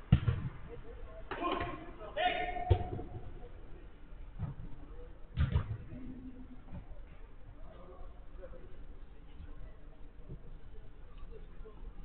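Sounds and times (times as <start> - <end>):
football being kicked: 0.0 - 0.6, 2.6 - 3.2, 5.4 - 5.8.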